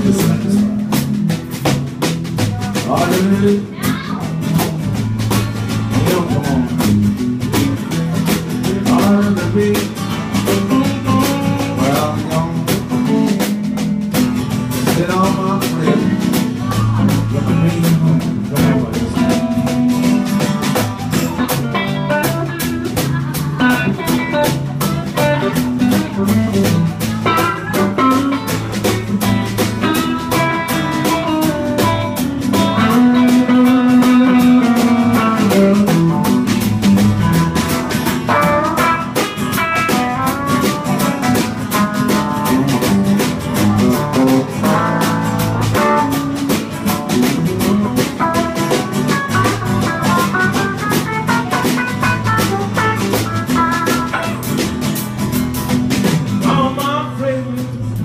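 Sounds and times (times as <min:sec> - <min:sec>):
acoustic guitar: 0:00.0 - 0:58.0
drum kit steady beat: 0:00.0 - 0:58.0
electric guitar: 0:00.0 - 0:58.0.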